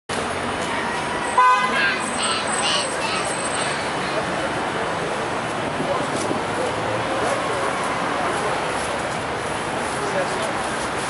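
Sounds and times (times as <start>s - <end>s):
street traffic noise: 0.1s - 11.0s
short car horn toot: 1.4s - 2.0s.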